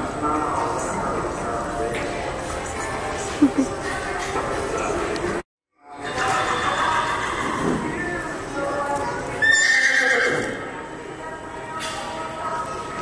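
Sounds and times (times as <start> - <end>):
horse whinnying: 6.4 - 7.8, 9.4 - 10.6.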